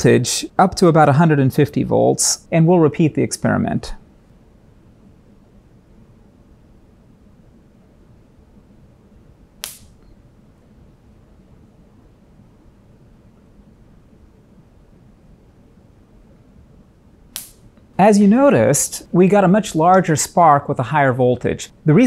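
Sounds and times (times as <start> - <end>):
electric spark snapping: 9.6 - 10.0, 17.3 - 17.8.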